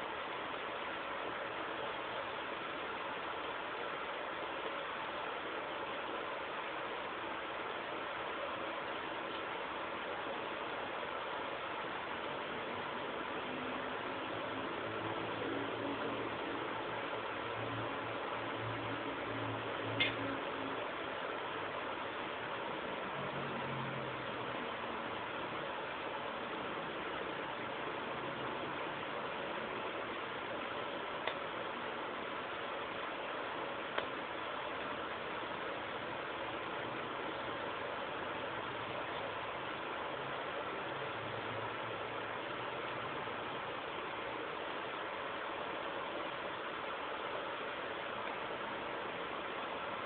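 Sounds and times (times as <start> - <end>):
faint low hum: 0.0 - 50.0
steady background hiss: 0.0 - 50.0.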